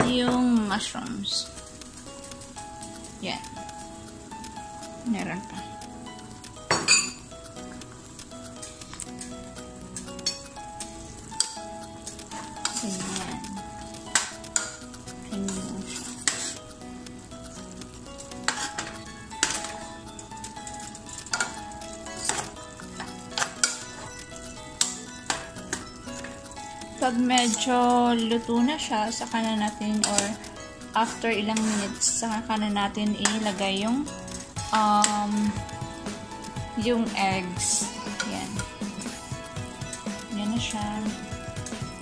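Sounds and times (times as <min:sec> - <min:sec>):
metal spoon scraping a pan: 0:08.6 - 0:16.8, 0:17.5 - 0:42.0.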